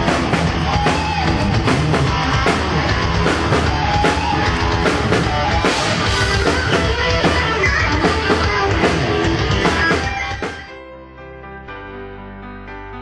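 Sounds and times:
pounding drum kit: 0.0 - 10.7
distorted electric guitar: 0.0 - 10.8
rock band playing live: 0.0 - 11.7.

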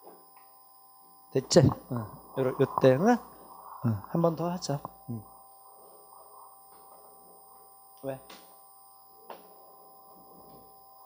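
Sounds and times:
faint steady high tones: 0.0 - 11.0.

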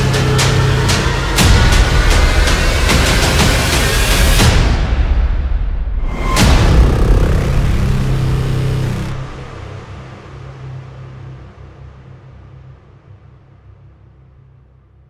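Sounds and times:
low rumbling drone: 6.0 - 10.8
dense noisy wash: 6.1 - 9.9.

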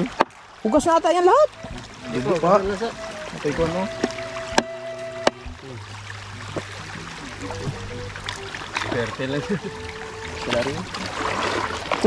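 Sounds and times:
shallow stream rushing: 0.0 - 12.0.

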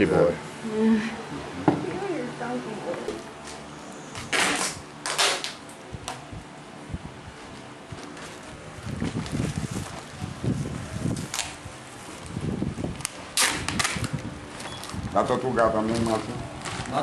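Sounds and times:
newspaper and plastic bag rustling: 7.4 - 17.0.

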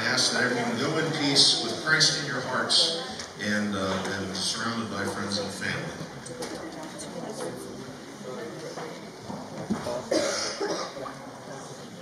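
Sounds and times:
person coughing: 10.1 - 11.1.

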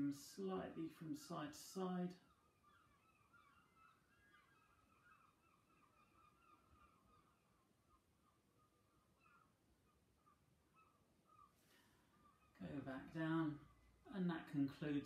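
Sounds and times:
faint bird chirping: 0.0 - 15.0.

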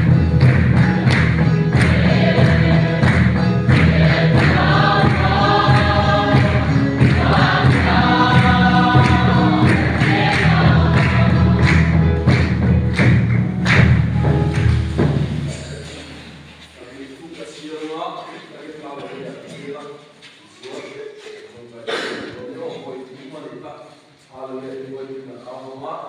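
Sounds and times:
congregation singing a hymn: 0.0 - 13.4
hand clapping on a steady beat: 0.0 - 15.5
electronic keyboard accompaniment: 0.0 - 16.5.

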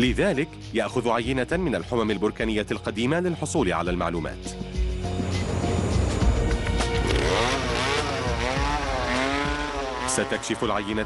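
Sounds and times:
background music: 0.0 - 11.0
small petrol engine revving: 5.2 - 11.0.

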